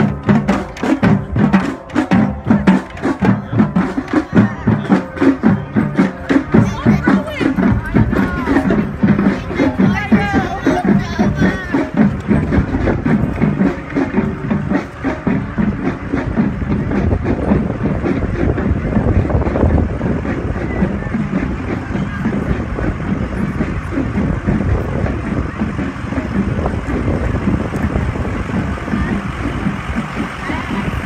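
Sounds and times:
music: 0.0s - 31.0s
vehicles running: 0.0s - 31.0s
voices: 0.0s - 31.0s
wind on microphone: 6.6s - 14.5s, 15.4s - 31.0s.

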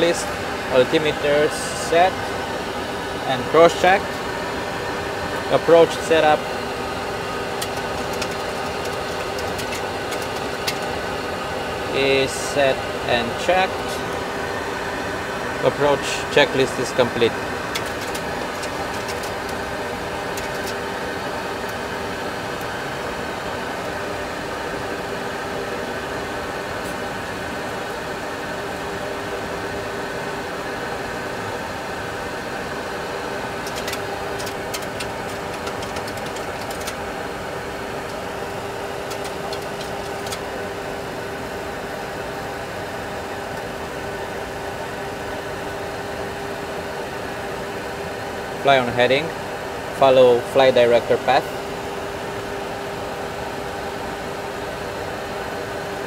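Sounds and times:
cockpit engine and airflow drone: 0.0s - 56.0s.

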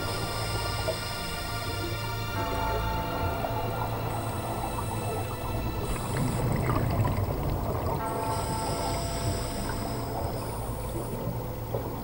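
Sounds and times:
regulator humming tone: 0.0s - 12.0s
exhaled bubbles rushing: 1.9s - 12.0s.

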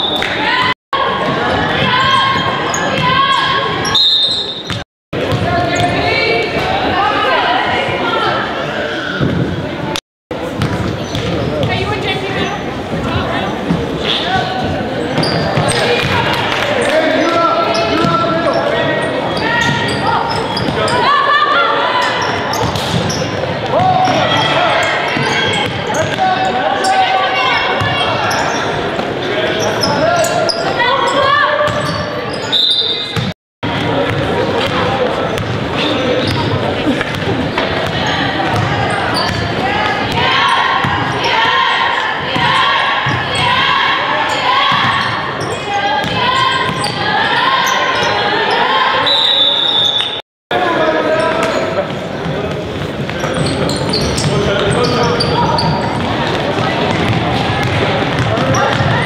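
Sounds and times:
players and spectators voices: 0.0s - 59.0s
referee's whistle blast: 3.9s - 4.7s, 49.0s - 50.2s
basketball bouncing on hardwood: 56.9s - 59.0s.

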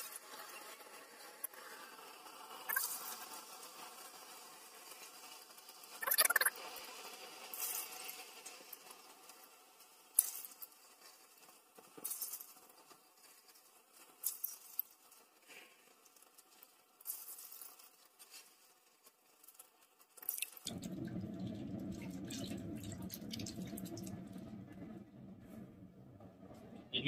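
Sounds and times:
milk splashing in a metal pot: 20.2s - 25.4s
steady low noise: 20.7s - 27.0s.

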